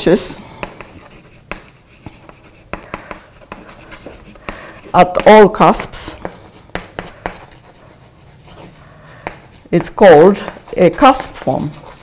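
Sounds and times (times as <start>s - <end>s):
chalk tapping and scratching on blackboard: 0.1s - 12.0s.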